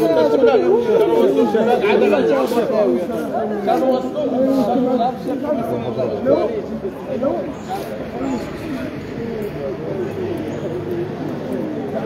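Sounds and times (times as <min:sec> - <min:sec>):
crowd talking loudly: 0:00.0 - 0:12.0.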